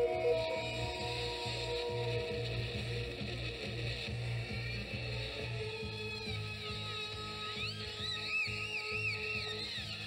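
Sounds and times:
high warbling tone: 0:00.0 - 0:03.2
rock music from a record: 0:00.0 - 0:10.0.

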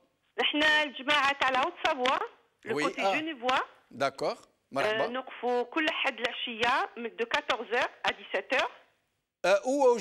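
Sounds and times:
voices talking on phone: 0:00.4 - 0:03.8, 0:04.8 - 0:08.9.

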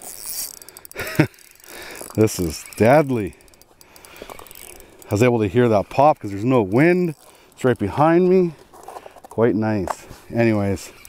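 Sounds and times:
fishing reel clicking: 0:00.0 - 0:08.6, 0:10.4 - 0:11.0.

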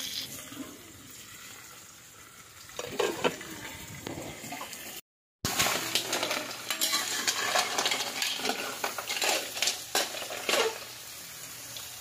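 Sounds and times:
steady sizzle: 0:05.4 - 0:12.0
shells and ladle clattering in wok: 0:05.5 - 0:11.1.

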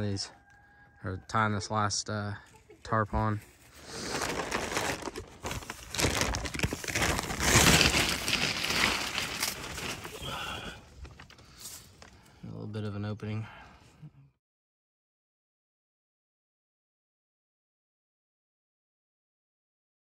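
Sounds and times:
plastic tarp crinkling: 0:03.6 - 0:10.8.

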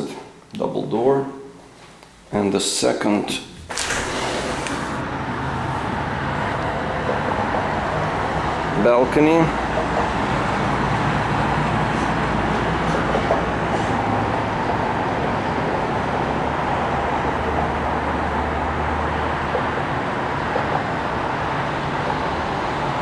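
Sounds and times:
expressway traffic noise: 0:03.7 - 0:23.0.

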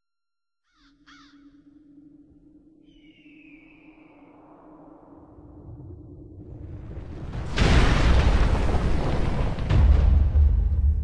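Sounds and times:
harsh bird calls: 0:00.6 - 0:01.7.

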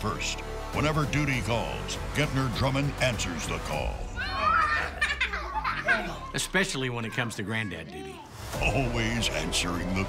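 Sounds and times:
young children laughing and squealing: 0:04.2 - 0:08.3.

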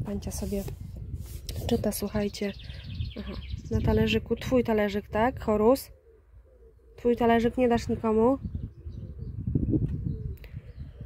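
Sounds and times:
low rumble on microphone: 0:00.0 - 0:05.8, 0:07.0 - 0:11.0
dove cooing: 0:05.8 - 0:07.1, 0:08.8 - 0:11.0.

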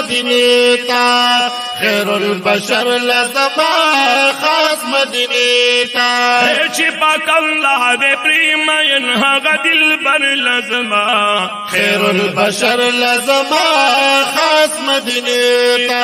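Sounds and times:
men singing in chorus: 0:00.0 - 0:16.0.

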